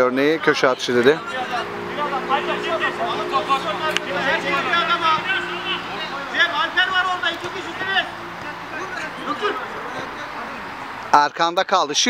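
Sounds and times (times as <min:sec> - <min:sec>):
men talking and calling out: 0:00.0 - 0:12.0
low hum: 0:01.1 - 0:08.8.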